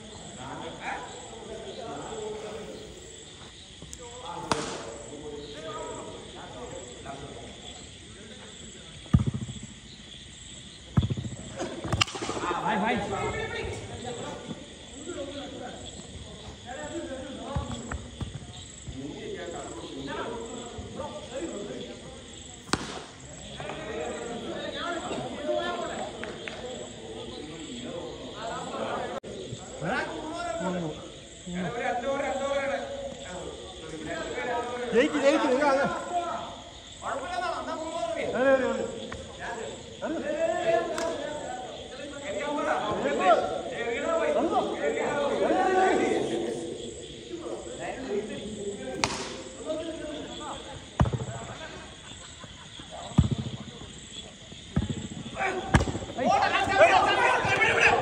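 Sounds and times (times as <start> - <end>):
faint background voices: 0.0 - 9.1
men talking: 0.0 - 9.1, 11.3 - 58.0
sharp knock: 49.0 - 49.4.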